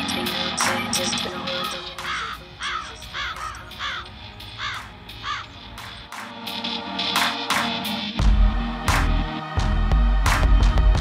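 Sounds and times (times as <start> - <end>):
crow cawing: 1.5 - 6.1.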